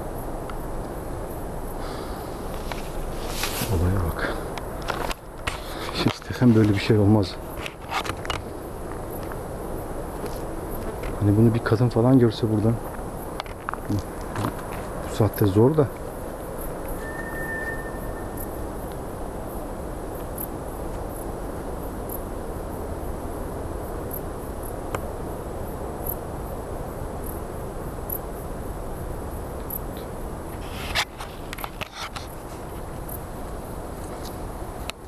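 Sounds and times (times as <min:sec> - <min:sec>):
night insects chirping: 0:00.0 - 0:35.0
sharp cracks and rustles: 0:02.5 - 0:09.5, 0:12.8 - 0:16.1, 0:30.5 - 0:33.2.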